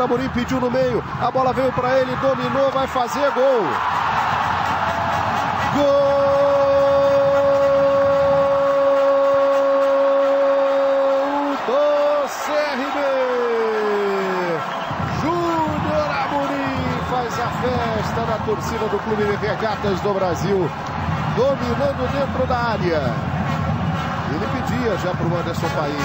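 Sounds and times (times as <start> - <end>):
crowd noise: 0.0 - 26.0
man shouting goal call: 5.7 - 12.3.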